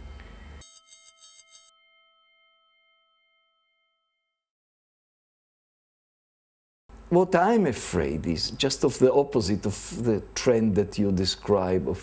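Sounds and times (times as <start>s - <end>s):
soft bell-like chime: 0.0s - 4.5s.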